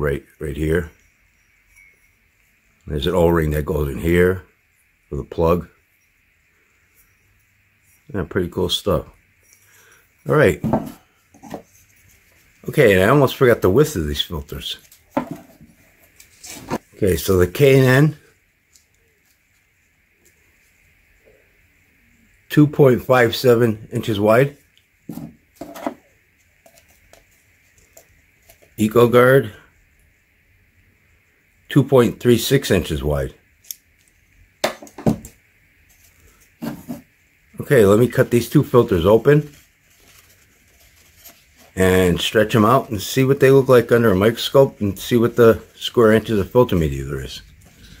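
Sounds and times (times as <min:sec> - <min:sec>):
man speaking: 0:00.0 - 0:01.0, 0:02.9 - 0:04.5, 0:05.1 - 0:05.8, 0:08.1 - 0:09.2, 0:10.2 - 0:10.8, 0:12.6 - 0:14.9, 0:16.9 - 0:18.2, 0:22.5 - 0:24.6, 0:28.8 - 0:29.7, 0:31.7 - 0:33.4, 0:37.6 - 0:39.6, 0:41.7 - 0:47.6
faint soft sound: 0:00.0 - 0:31.7
knocks and scrapes on wooden table: 0:10.6 - 0:11.7, 0:15.2 - 0:15.7, 0:36.6 - 0:37.1.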